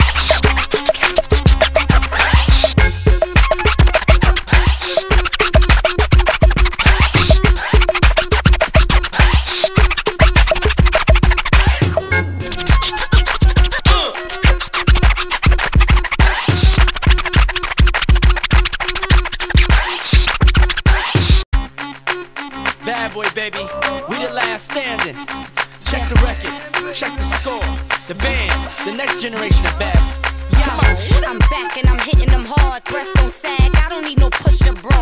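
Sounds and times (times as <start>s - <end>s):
turntable scratching: 0.0s - 21.4s, 22.0s - 35.0s
hip-hop beat: 0.0s - 35.0s
kick drum: 2.8s - 11.8s, 29.5s - 35.0s.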